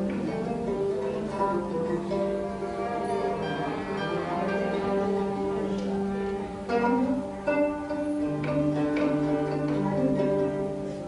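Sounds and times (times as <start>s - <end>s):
plucked and bowed strings ensemble: 0.0s - 11.0s.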